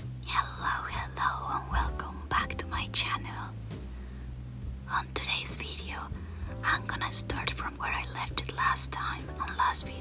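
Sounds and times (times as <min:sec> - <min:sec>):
steady low hum: 0:00.0 - 0:10.0
soft whispered speech: 0:00.2 - 0:03.6, 0:04.9 - 0:10.0.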